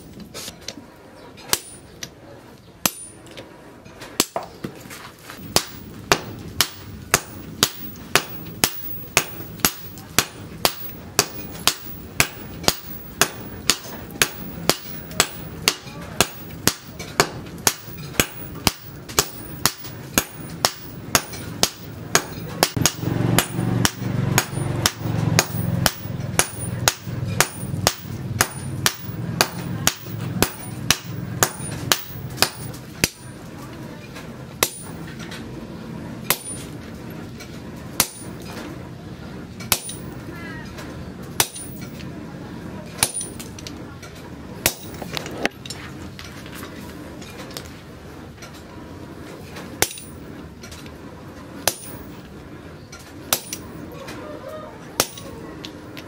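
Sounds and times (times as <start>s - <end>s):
hammer striking hot steel: 1.5s - 2.1s, 2.8s - 3.5s, 4.1s - 4.7s, 5.4s - 33.5s, 34.2s - 35.4s, 36.2s - 38.7s, 39.6s - 40.3s, 41.3s - 42.1s, 42.8s - 43.8s, 44.6s - 46.7s, 49.6s - 51.0s, 51.6s - 52.3s, 53.2s - 54.0s, 55.0s - 56.0s
low hum: 5.4s - 56.0s.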